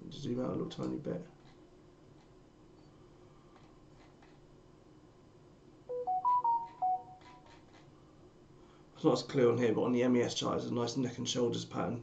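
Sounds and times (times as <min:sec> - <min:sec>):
electronic notification jingle: 0:05.9 - 0:07.2.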